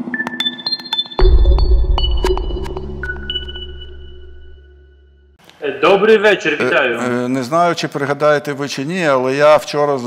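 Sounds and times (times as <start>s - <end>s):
high pinging chime notes: 0.4s - 5.3s
deep bass hit: 1.2s - 5.2s.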